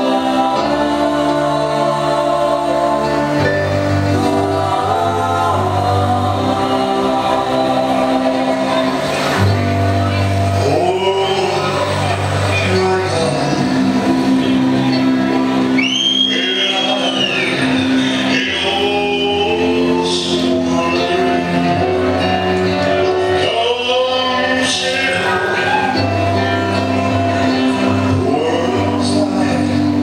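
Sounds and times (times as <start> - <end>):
song with singing: 0.0 - 30.0.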